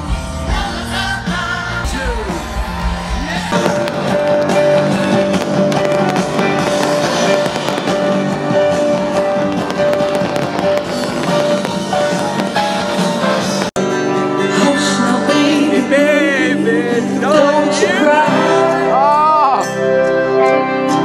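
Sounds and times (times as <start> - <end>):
live rock music with piano: 0.0 - 21.0
fireworks popping and crackling: 2.4 - 13.8.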